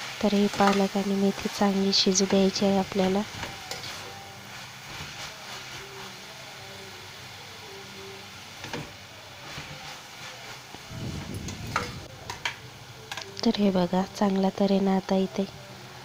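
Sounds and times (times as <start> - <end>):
greens sizzling in a pan: 0.0 - 16.0.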